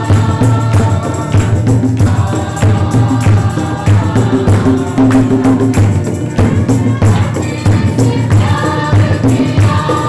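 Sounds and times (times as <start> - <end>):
group singing: 0.0 - 10.0
hand drums steady beat: 0.0 - 10.0.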